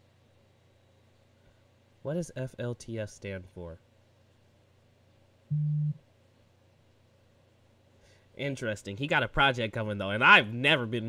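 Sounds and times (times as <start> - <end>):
short low steady tone: 5.5 - 6.0.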